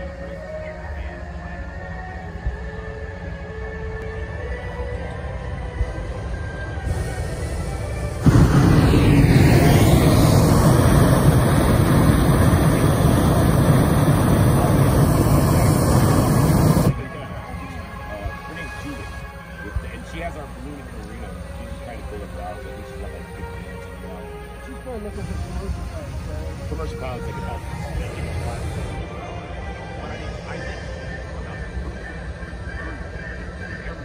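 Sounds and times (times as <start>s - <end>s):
propane burner blast: 6.8s - 23.6s, 24.9s - 29.1s
crowd voices: 6.9s - 34.0s.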